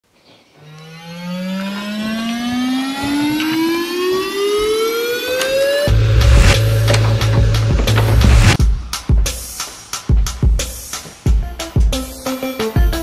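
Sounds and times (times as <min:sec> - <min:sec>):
electronic rising tone: 0:00.6 - 0:08.6
heavy bass music: 0:01.0 - 0:09.5.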